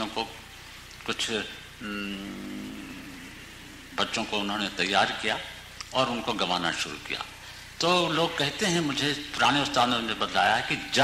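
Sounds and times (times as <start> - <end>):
background hiss: 0.0 - 11.0
low electrical hum: 0.0 - 11.0
man's hesitation sound: 1.8 - 4.5.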